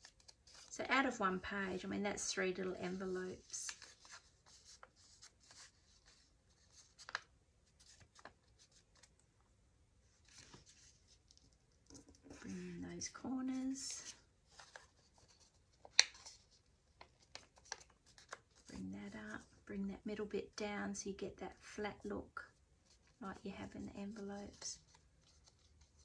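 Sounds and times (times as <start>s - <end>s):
paper rustling and creasing: 0.0s - 9.3s, 10.0s - 19.6s, 22.8s - 26.0s.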